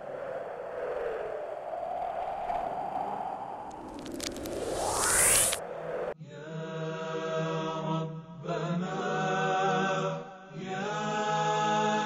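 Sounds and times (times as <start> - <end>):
airy whoosh: 3.8 - 6.2.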